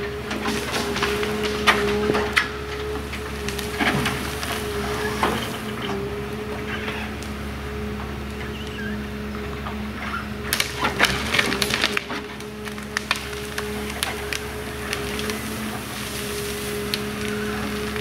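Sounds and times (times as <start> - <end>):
branches cracking and snapping: 0.0 - 7.4, 10.4 - 18.0
diesel engine and hydraulics whine: 0.0 - 18.0.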